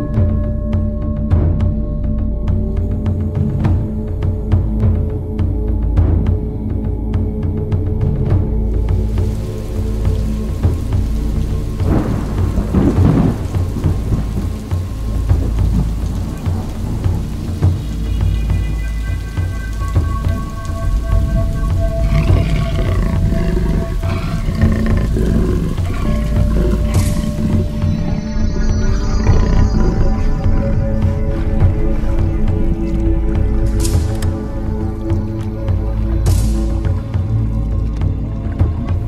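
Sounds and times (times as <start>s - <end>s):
soft sustained musical tones: 0.0s - 39.0s
heavy rain: 7.8s - 39.0s
low rumbling thunder: 8.8s - 34.2s.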